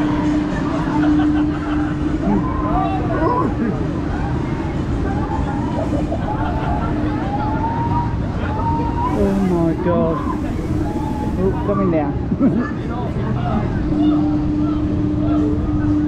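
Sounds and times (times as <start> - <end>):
fairground ride rumbling: 0.0 - 16.0.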